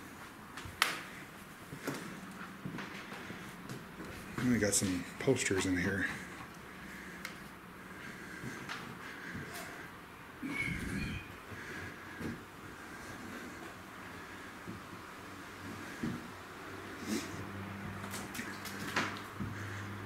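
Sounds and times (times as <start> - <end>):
slow footsteps on floor: 1.4 - 5.7.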